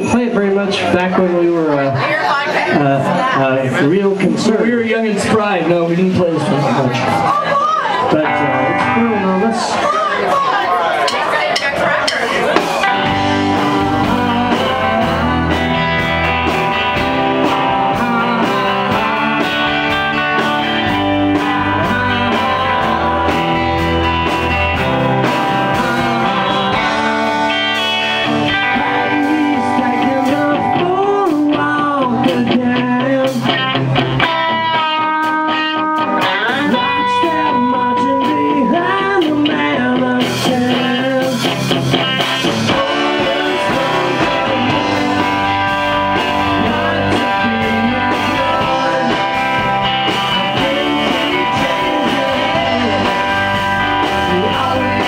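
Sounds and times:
bass guitar: 0.0s - 55.0s
drums: 0.0s - 55.0s
electric guitars: 0.0s - 55.0s
person singing: 7.0s - 10.4s, 12.5s - 55.0s.

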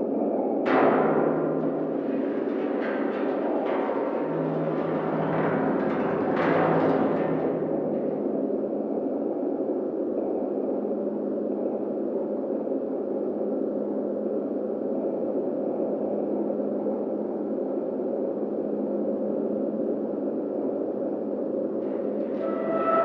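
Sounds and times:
low rumble: 0.0s - 11.7s
steady hum: 0.0s - 23.0s.

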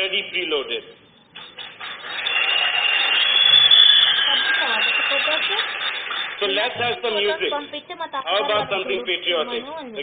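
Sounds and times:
audience applauding: 1.4s - 7.1s
audience cheering: 1.6s - 6.6s.

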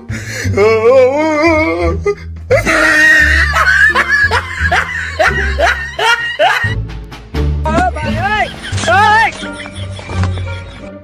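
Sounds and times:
background music with bass line: 0.0s - 11.0s
comic laughter: 2.5s - 6.8s, 8.3s - 10.9s.

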